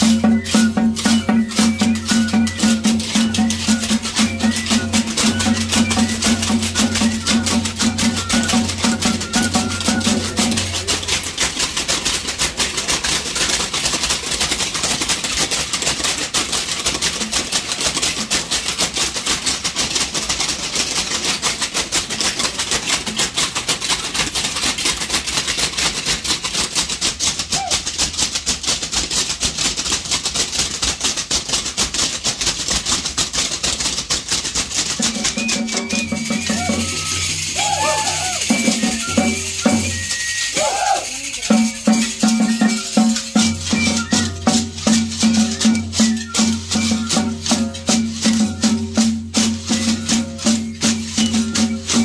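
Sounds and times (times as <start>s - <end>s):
drum beating: 0.0s - 52.0s
hand rattles shaken: 0.0s - 52.0s.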